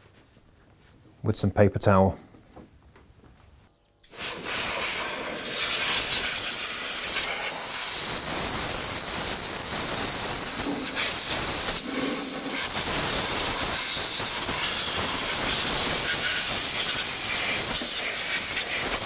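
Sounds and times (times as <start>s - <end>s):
compressed air blow gun hissing: 4.0s - 19.0s.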